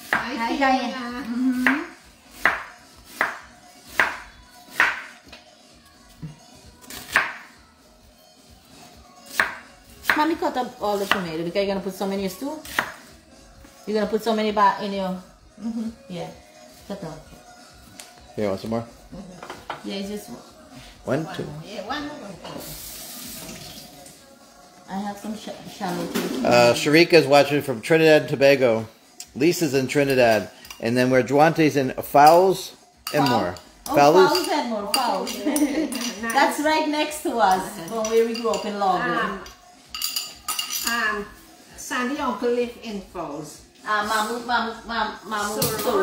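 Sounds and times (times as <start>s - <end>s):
knife chopping on cutting board: 1.6s - 5.1s, 6.8s - 7.4s, 9.3s - 10.2s, 12.7s - 13.1s.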